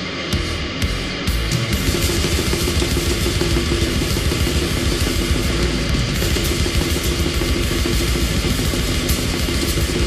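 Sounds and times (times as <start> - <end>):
drum kit pounding fast: 0.0 - 10.0
heavily distorted guitar riff: 0.0 - 10.0.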